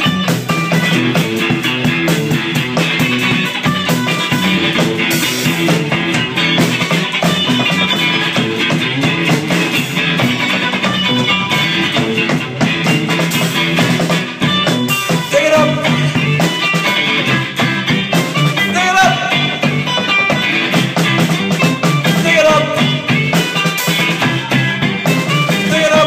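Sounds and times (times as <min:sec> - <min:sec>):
drum kit: 0:00.0 - 0:26.0
electric guitars: 0:00.0 - 0:26.0.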